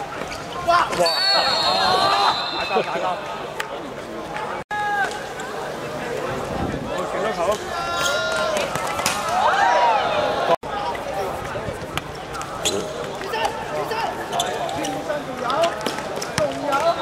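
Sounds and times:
people calling out: 0.7 - 3.6.

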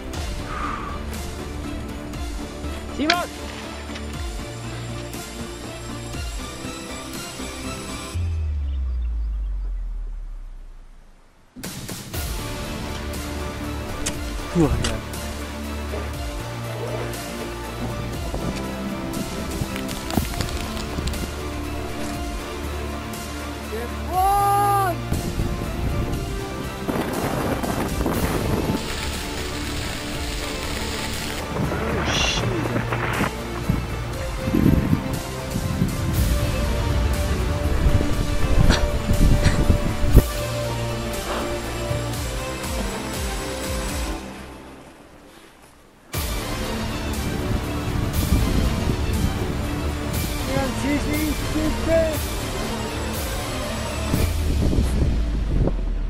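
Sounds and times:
background music: 0.0 - 56.0
low rumble: 8.2 - 15.6, 54.1 - 56.0
storm wind rushing: 25.0 - 42.4, 47.2 - 52.4, 54.1 - 56.0.

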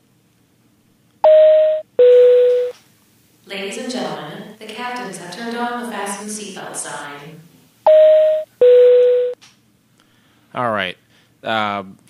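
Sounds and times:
two-tone cabin chime: 7.9 - 9.4.

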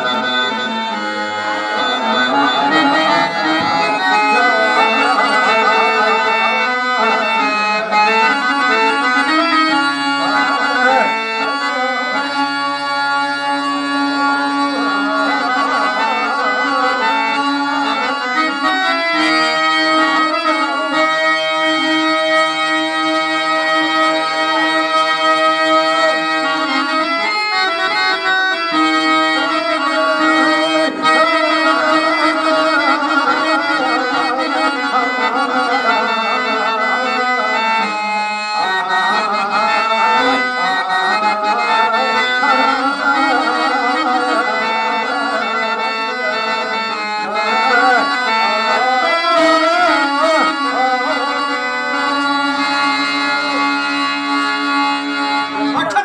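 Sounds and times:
harmonium melody: 0.0 - 56.0.

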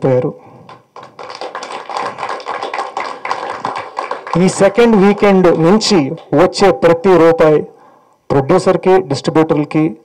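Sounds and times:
people clapping: 0.7 - 6.6.

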